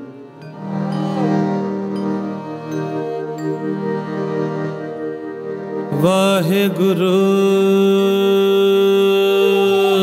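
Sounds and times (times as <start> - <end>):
sustained harmonium: 0.0 - 10.0
man singing: 5.9 - 10.0.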